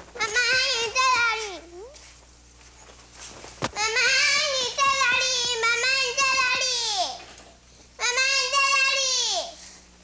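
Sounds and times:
child calling out: 0:08.0 - 0:09.6.

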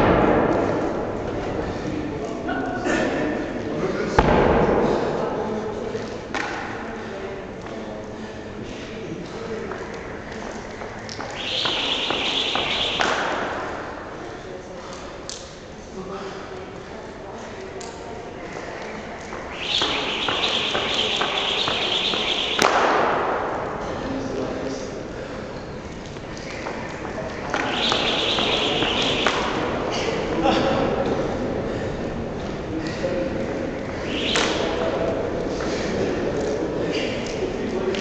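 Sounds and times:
rope slap: 0:09.7 - 0:13.7, 0:18.8 - 0:23.5, 0:33.9 - 0:35.2
jump rope whooshing: 0:18.7 - 0:23.6.

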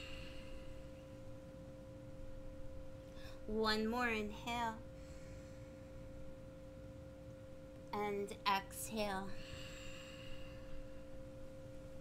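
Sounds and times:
faint steady tone drone: 0:00.0 - 0:12.0.

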